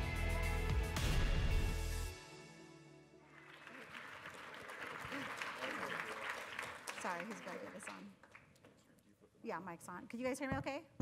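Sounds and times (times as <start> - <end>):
intro music: 0.0 - 3.2
audience applauding: 3.2 - 8.6.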